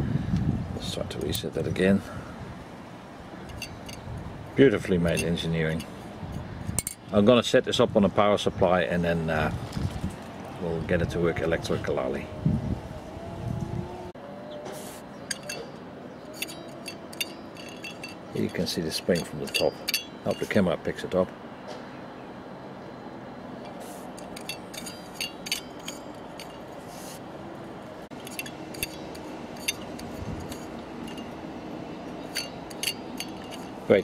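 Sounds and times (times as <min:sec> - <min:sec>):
light metallic clinks: 0:03.4 - 0:04.1, 0:04.7 - 0:05.9, 0:06.7 - 0:07.1, 0:15.2 - 0:20.6, 0:23.6 - 0:26.8, 0:28.1 - 0:34.0.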